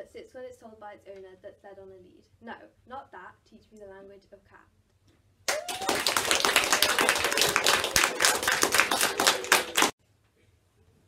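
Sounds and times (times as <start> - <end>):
audience applauding: 5.5 - 10.0.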